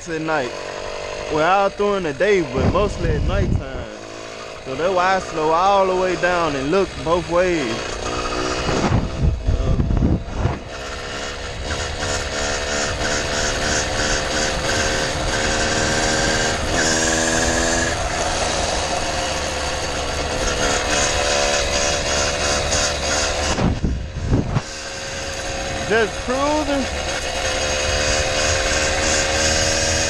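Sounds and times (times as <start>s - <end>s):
small two-stroke engine buzzing: 0.0s - 30.0s
wind rumble on microphone: 2.2s - 4.0s, 7.7s - 12.2s, 20.0s - 28.8s.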